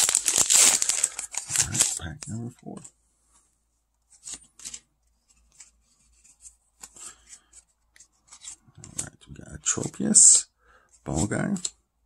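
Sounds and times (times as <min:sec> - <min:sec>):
cards rustling and sliding: 0:00.0 - 0:02.9, 0:04.1 - 0:09.9.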